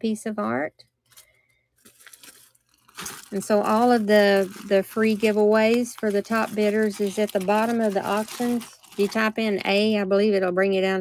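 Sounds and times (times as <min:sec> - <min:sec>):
soft crinkling: 0:00.9 - 0:09.9.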